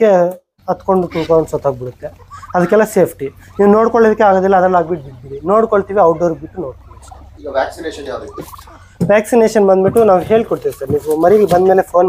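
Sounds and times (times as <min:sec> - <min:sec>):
turkeys gobbling: 0:00.6 - 0:12.0.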